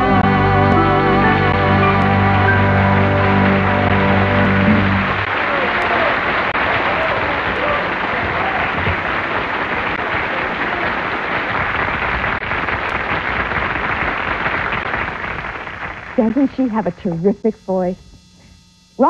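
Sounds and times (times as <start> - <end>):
band sustained chord: 0.0 - 5.4
audience applauding: 0.0 - 16.8.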